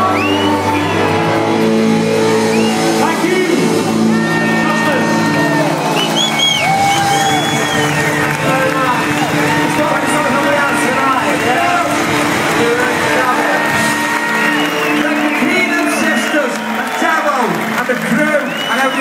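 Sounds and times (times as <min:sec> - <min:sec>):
crowd cheering and whistling: 0:00.0 - 0:19.0.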